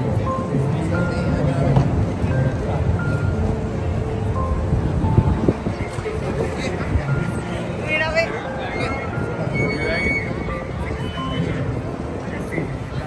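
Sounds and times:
crowd of voices: 0:00.0 - 0:13.0
passing traffic: 0:00.0 - 0:13.0
simple melody music: 0:00.0 - 0:13.0.

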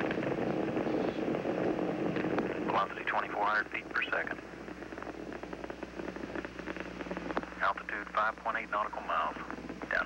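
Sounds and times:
low hum: 0:00.0 - 0:10.0
rocket engines crackling rumble: 0:00.0 - 0:10.0.

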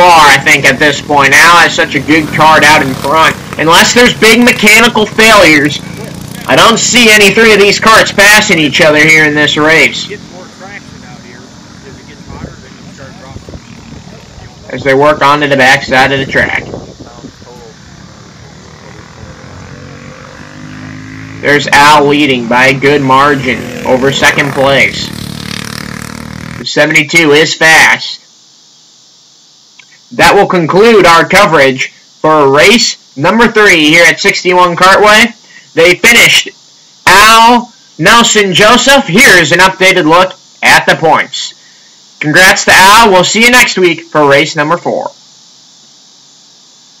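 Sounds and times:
person speaking: 0:00.0 - 0:18.6, 0:21.4 - 0:25.2
go-kart engines droning: 0:00.0 - 0:26.7
faint steady hiss: 0:00.0 - 0:47.0.

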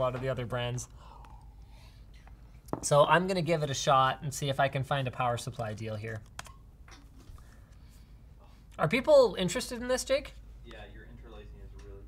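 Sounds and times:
man speaking: 0:08.8 - 0:12.0.

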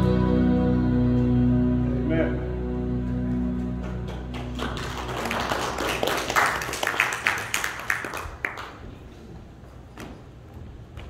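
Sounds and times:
soft instrumental music: 0:00.0 - 0:05.7.

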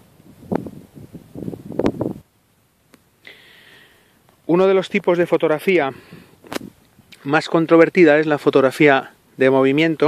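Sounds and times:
wind buffeting microphone: 0:00.0 - 0:02.3.

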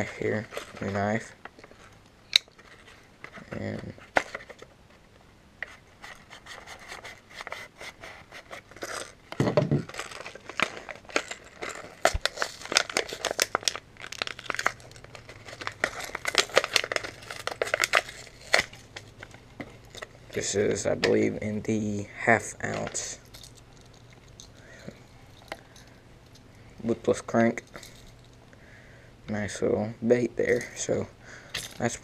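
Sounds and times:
plastic packaging crackling: 0:08.6 - 0:20.6.

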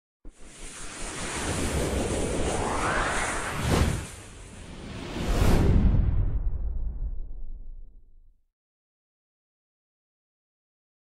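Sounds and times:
rushing whoosh: 0:00.3 - 0:07.6.

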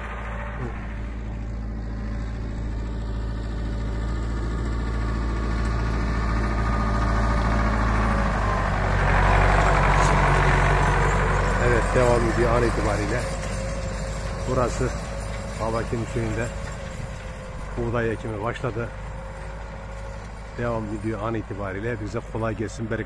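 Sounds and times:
tractor engine running: 0:00.0 - 0:23.0.

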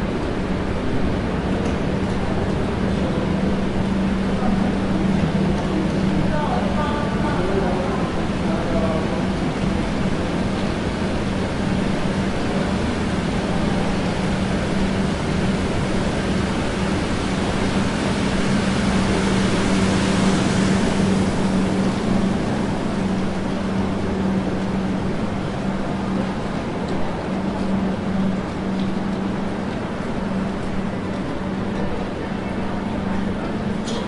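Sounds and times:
busy station rumble: 0:00.0 - 0:34.0
constant low hum: 0:00.0 - 0:34.0.

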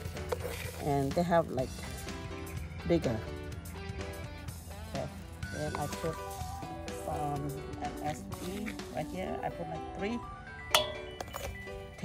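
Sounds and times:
background music: 0:00.0 - 0:12.0
spoon clinking on metal bowl: 0:10.7 - 0:11.6.

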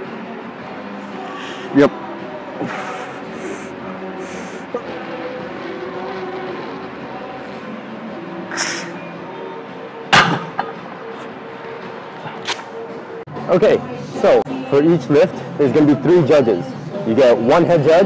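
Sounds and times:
background music: 0:00.0 - 0:18.0
hissing breaths: 0:01.1 - 0:01.8, 0:02.6 - 0:04.8, 0:08.5 - 0:09.1.

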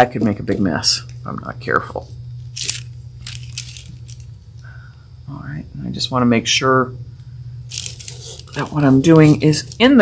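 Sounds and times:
low electrical hum: 0:00.0 - 0:10.0
rustling handling noises: 0:02.0 - 0:04.3, 0:07.7 - 0:10.0.

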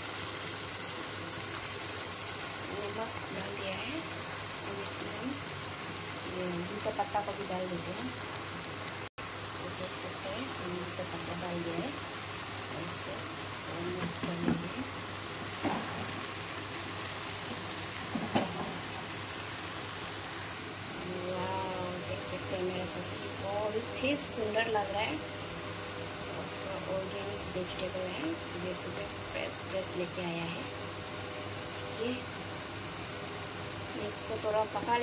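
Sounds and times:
vegetables sizzling in a frying pan: 0:00.0 - 0:35.0.

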